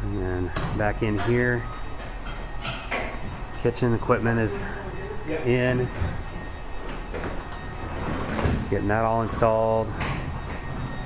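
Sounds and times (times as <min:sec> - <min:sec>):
low rumbling room noise: 0:00.0 - 0:11.0.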